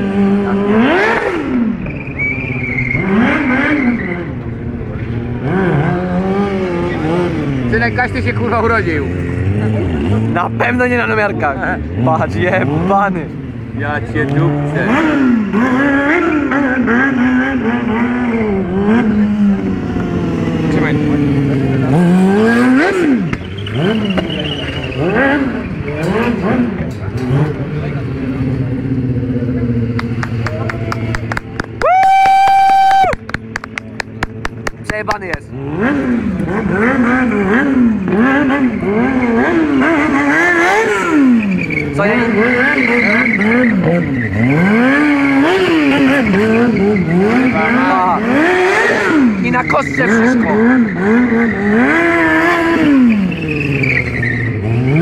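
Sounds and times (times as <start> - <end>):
motorcycle engine revving: 0.0 - 55.0
quick run of clicks: 29.9 - 35.4.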